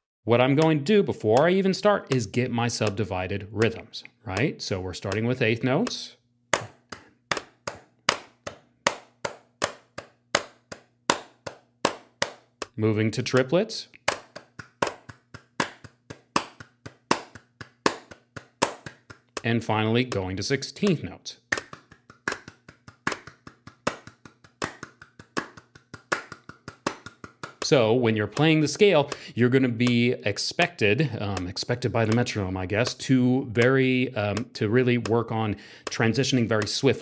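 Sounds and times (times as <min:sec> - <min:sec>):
metronome ticking: 0:00.5 - 0:37.0
hands clapping: 0:02.1 - 0:37.0.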